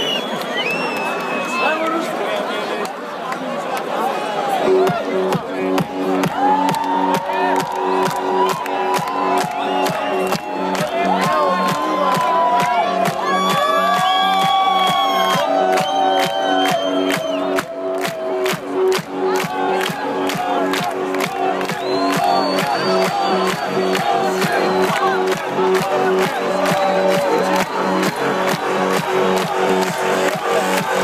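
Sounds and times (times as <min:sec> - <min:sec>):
crowd cheering: 0:00.0 - 0:31.0
electronic dance music: 0:04.5 - 0:31.0.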